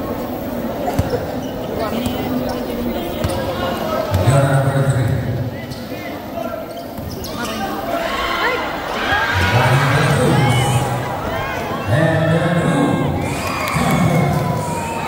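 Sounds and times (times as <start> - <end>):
crowd chatter and shouts: 0.0 - 15.0.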